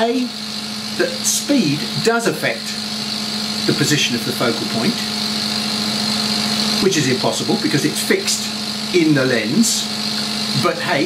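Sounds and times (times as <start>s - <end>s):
machinery humming: 0.0s - 11.0s
man speaking: 1.0s - 2.8s, 3.6s - 5.2s, 6.8s - 9.9s, 10.6s - 11.0s.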